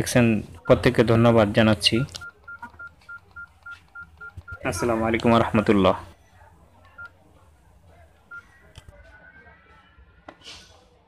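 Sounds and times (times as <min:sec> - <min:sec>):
phone keypad beeps: 0:00.6 - 0:01.2, 0:01.9 - 0:05.8, 0:06.9 - 0:07.2, 0:08.3 - 0:08.6.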